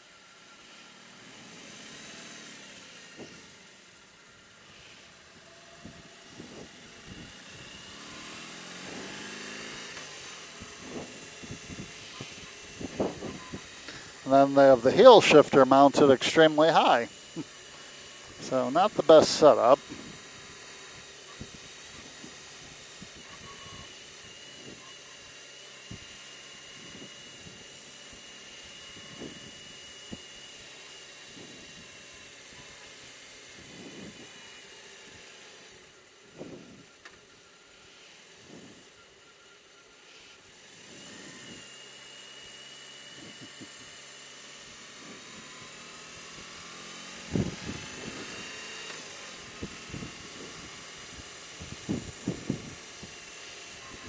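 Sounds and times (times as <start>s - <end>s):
motorcycle engine running: 0.0s - 54.0s
road and wind noise: 0.0s - 54.0s
steady high whine: 0.0s - 54.0s.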